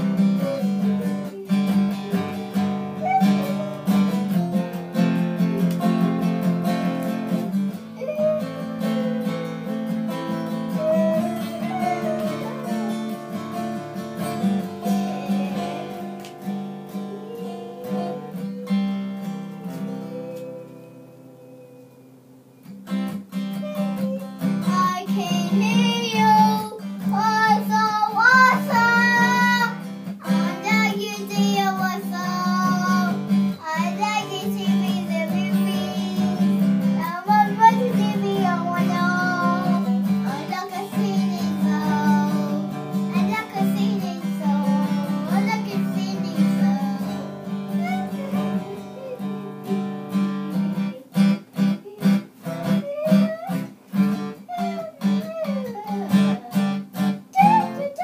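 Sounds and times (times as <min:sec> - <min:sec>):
girl singing: 0:00.0 - 0:22.1, 0:23.3 - 0:58.0
acoustic guitar strumming: 0:00.0 - 0:58.0.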